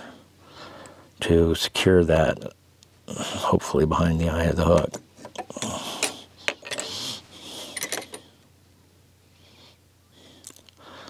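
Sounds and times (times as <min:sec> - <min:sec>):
breathing close to microphone: 0:00.0 - 0:01.1, 0:09.3 - 0:11.0.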